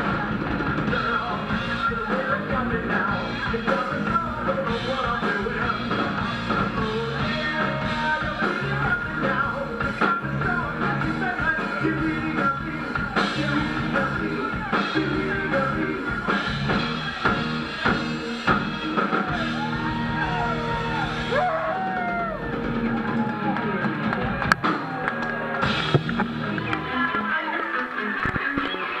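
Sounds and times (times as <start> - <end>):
drum kit: 0.0 - 27.2
electric guitars: 0.0 - 29.0.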